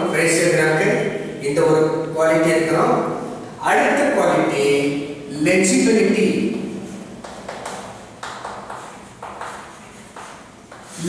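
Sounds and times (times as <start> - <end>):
chalk scratching on chalkboard: 6.8 - 11.0.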